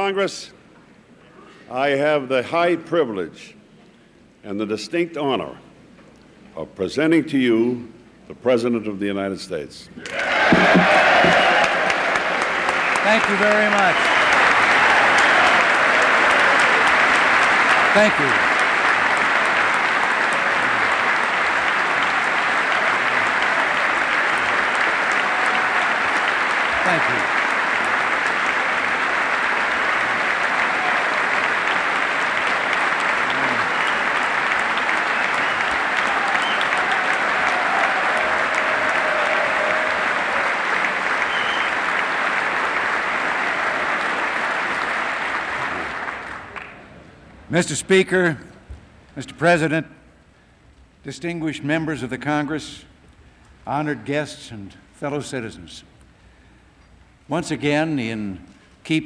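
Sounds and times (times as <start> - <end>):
audience applause: 10.0 - 46.9.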